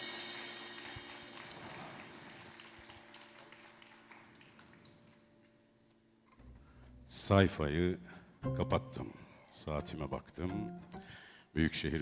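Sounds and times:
faint hand claps: 0.0 - 5.7.

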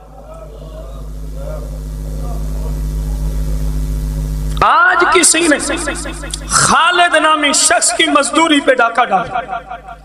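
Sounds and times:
electrical hum with low drone: 0.0 - 10.0.

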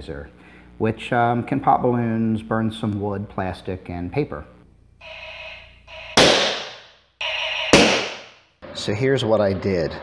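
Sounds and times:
balloon popping bang: 6.1 - 7.0, 7.7 - 8.4.

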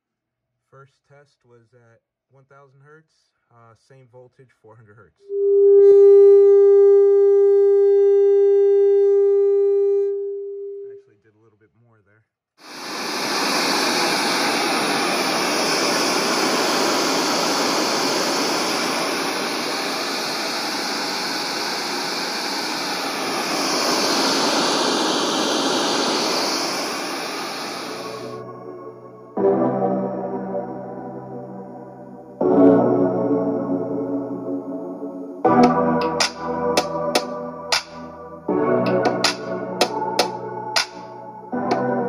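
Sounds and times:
loud steady test tone: 5.3 - 11.0, 12.6 - 42.0
loud rush of noise: 12.6 - 29.4.

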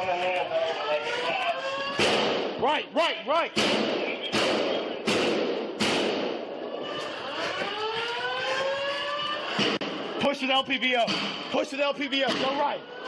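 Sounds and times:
siren-like wailing tone: 0.0 - 2.0, 6.6 - 9.6, 12.6 - 13.0
sharp echoing bangs: 1.0 - 13.0.

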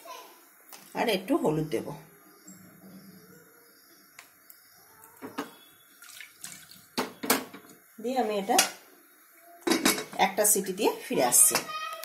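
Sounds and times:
water splashing in a metal pot: 5.9 - 7.2.

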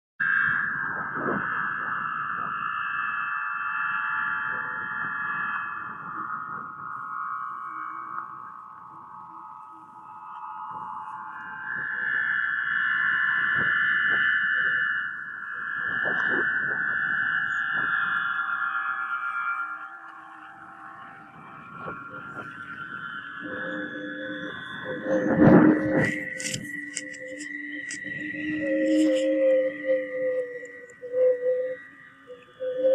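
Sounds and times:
wind harp whistling tones: 0.2 - 32.9
wind buffeting microphone: 21.0 - 31.0.

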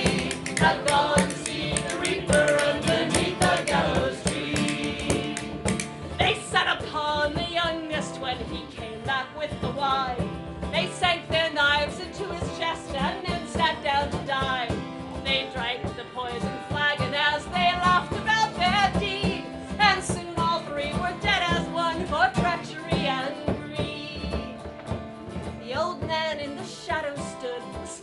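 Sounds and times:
plucked-string accompaniment: 0.0 - 28.0
woman singing folk ballad: 0.0 - 28.0.

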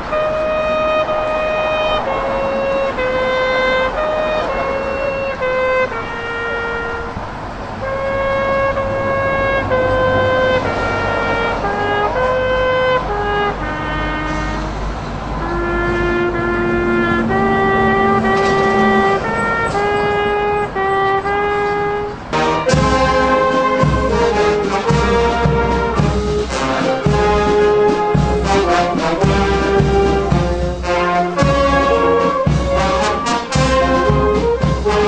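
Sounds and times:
brass instruments playing slow melody: 0.0 - 35.0.

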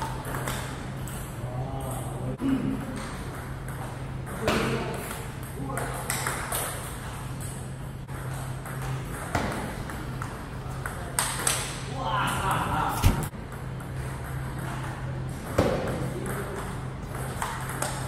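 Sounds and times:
table tennis balls clicking: 0.0 - 2.1, 13.5 - 18.0
steady low hum: 0.0 - 18.0.

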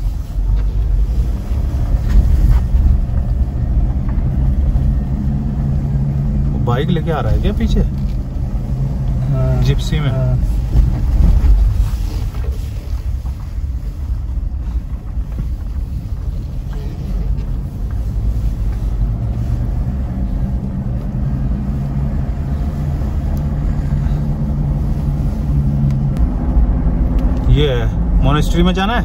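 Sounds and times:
engine and tyres rumbling: 0.0 - 29.0.

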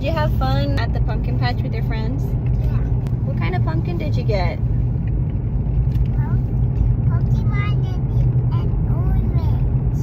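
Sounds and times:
car cabin road rumble: 0.0 - 10.0
child's voice: 2.5 - 3.0, 6.1 - 10.0.

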